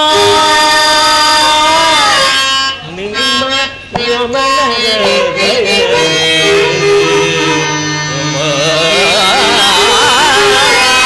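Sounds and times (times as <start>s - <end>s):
harmonium melody: 0.0s - 11.0s.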